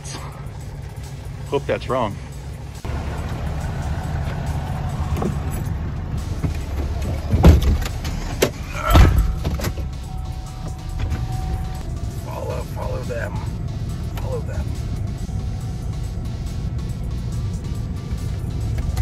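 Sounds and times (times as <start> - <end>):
truck engine rumble inside cab: 0.0 - 19.0.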